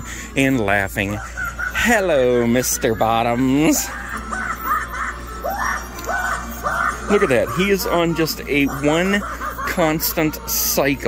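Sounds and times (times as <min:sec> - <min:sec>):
animatronic clown cackling laugh: 0:00.5 - 0:11.0.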